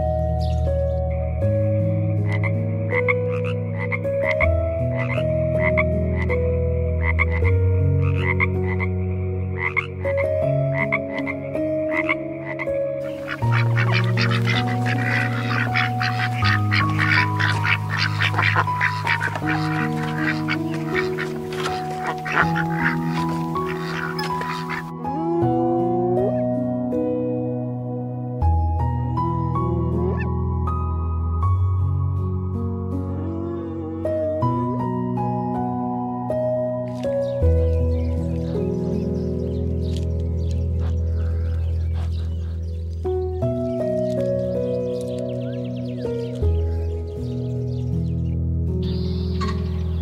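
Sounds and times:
soft background music: 0.0s - 50.0s
frog croaking: 2.2s - 25.7s, 36.9s - 46.9s
ducks quacking: 3.0s - 6.3s, 7.1s - 8.9s, 9.5s - 10.2s, 10.8s - 25.0s, 39.8s - 42.8s.

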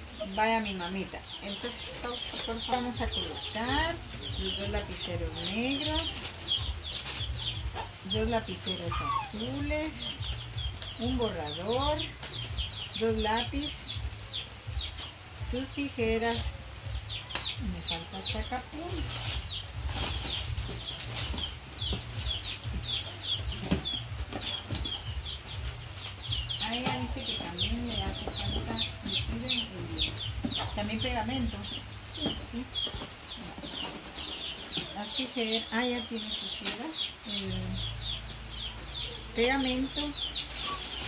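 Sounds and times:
chickens peeping: 0.0s - 41.0s
rustle: 14.3s - 28.8s, 38.5s - 41.0s
knocks and rustles of bags: 18.9s - 27.3s.

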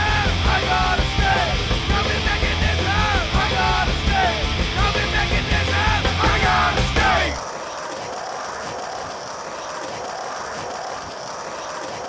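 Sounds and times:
fast irregular clicking: 7.4s - 12.0s.

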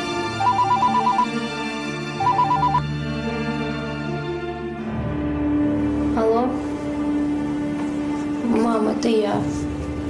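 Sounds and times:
background music: 0.0s - 10.0s
phone ringtone trill: 0.4s - 1.4s, 2.2s - 2.9s.

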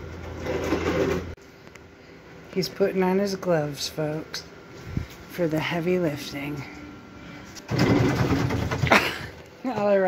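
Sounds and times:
steady low hum: 1.3s - 10.0s.

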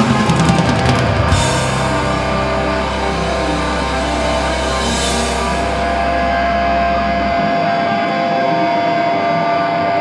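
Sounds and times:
deep bass: 0.0s - 8.3s
black metal band playing: 0.0s - 10.0s
distorted electric guitars ringing: 0.0s - 10.0s.

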